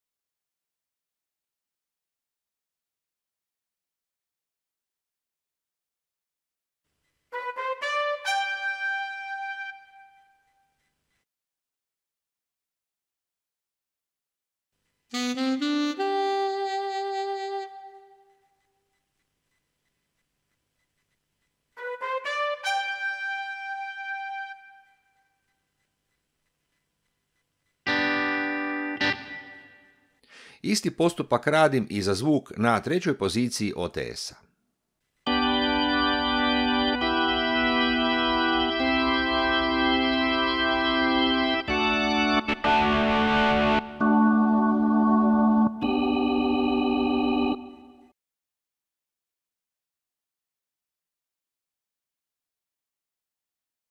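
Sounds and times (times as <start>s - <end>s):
quick brass notes: 7.3s - 10.1s, 21.8s - 24.8s
keyboard alto sax note: 15.1s - 18.3s
keyboard organ chord: 27.9s - 29.9s, 35.3s - 48.1s.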